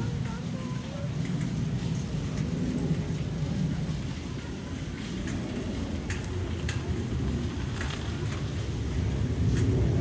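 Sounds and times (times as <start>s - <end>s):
faint distant voices: 0.0s - 9.4s
low rumble of store ambience: 0.0s - 10.0s.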